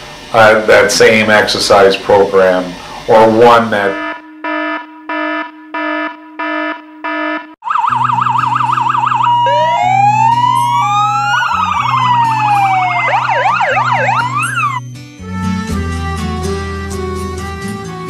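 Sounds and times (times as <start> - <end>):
electronic music with synth lines: 3.8 - 17.2
electronic beeps: 13.1 - 14.9.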